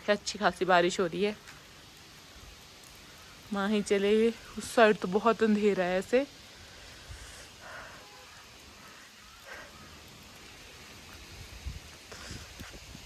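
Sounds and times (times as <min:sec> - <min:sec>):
steady rain falling: 0:00.0 - 0:13.0.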